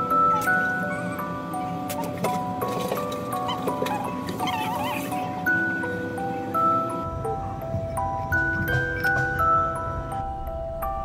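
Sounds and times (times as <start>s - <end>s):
light background melody: 0.0s - 11.0s.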